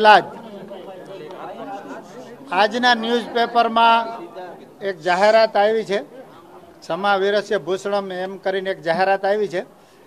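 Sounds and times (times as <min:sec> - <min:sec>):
man speaking: 0:00.0 - 0:09.8
faint background chatter: 0:00.0 - 0:10.0.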